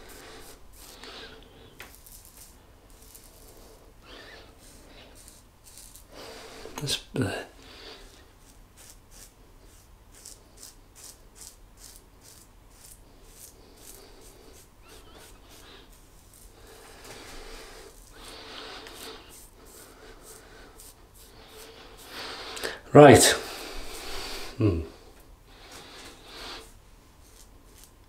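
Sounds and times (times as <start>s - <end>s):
soft rubbing: 0.0s - 6.9s, 7.9s - 22.5s, 23.1s - 24.6s, 25.5s - 28.0s
razor scraping stubble: 0.0s - 7.0s, 7.8s - 24.6s, 25.6s - 28.0s.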